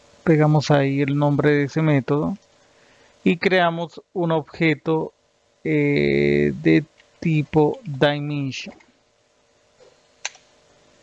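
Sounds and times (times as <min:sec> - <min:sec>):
sharp click: 0:10.2 - 0:10.5.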